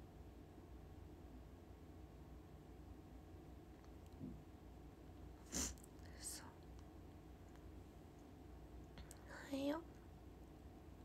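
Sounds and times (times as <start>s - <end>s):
faint low room hum: 0.0s - 11.0s
woman whispering: 6.0s - 6.6s, 9.0s - 10.0s.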